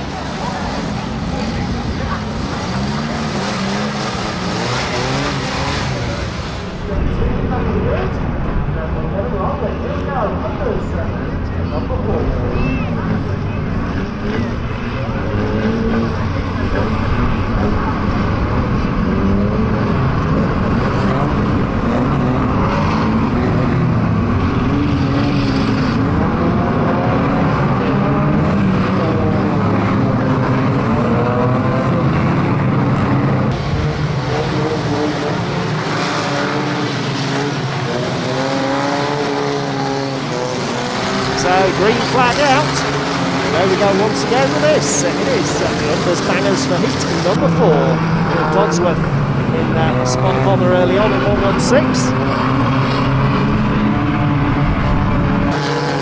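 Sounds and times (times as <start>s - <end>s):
racing car engines revving: 0.0s - 56.0s.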